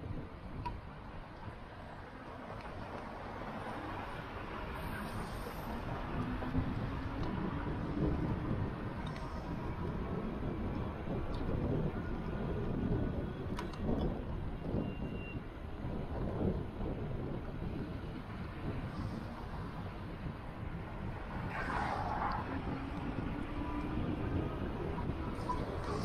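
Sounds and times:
city road traffic: 0:00.0 - 0:26.0
wind and road noise: 0:00.0 - 0:26.0.

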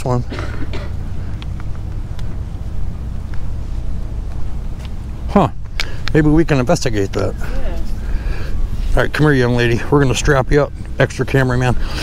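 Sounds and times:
car engine low rumble: 0:00.0 - 0:12.0.

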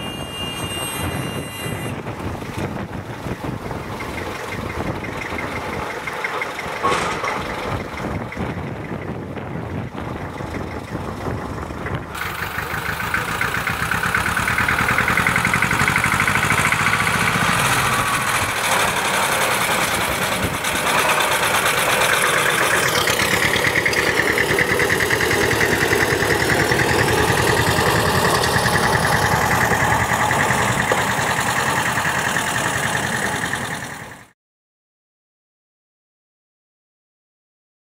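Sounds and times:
diesel locomotive engine running: 0:00.0 - 0:34.4.

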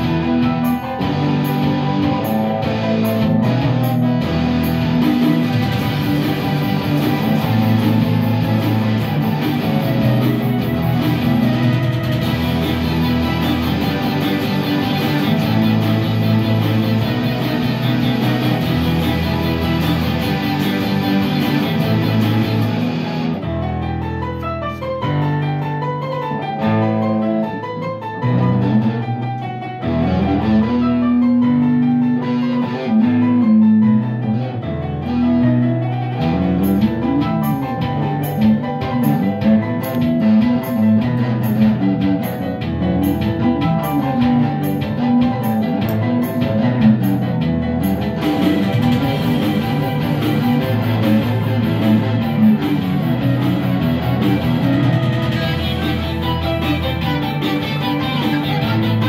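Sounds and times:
electric guitar: 0:00.0 - 0:59.0
sequenced backing track: 0:00.0 - 0:59.0.

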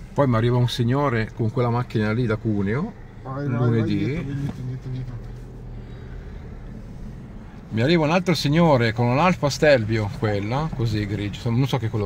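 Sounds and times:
car engine humming at low revs: 0:00.0 - 0:12.0.

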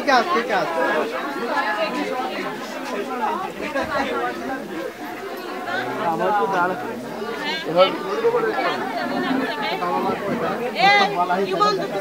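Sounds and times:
overlapping crowd chatter: 0:00.0 - 0:12.0.

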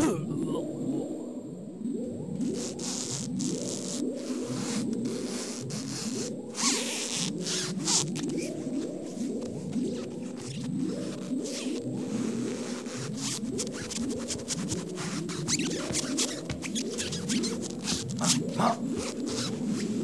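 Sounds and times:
hissing swishes: 0:14.8 - 0:20.0.

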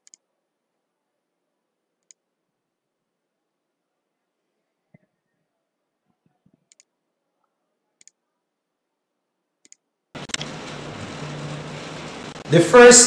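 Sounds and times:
steady hiss with low hum: 0:08.7 - 0:13.0.

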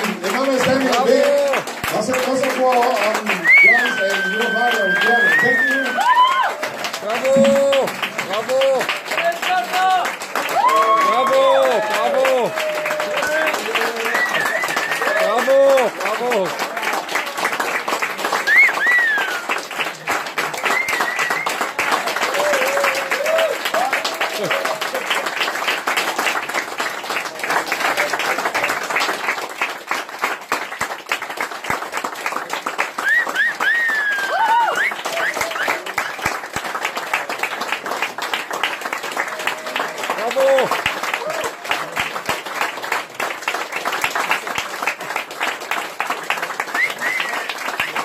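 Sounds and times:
audience applauding: 0:00.0 - 0:48.0
crowd shouting and whooping: 0:03.4 - 0:16.4, 0:18.4 - 0:19.6, 0:22.0 - 0:25.0, 0:33.0 - 0:35.9, 0:39.3 - 0:41.9.

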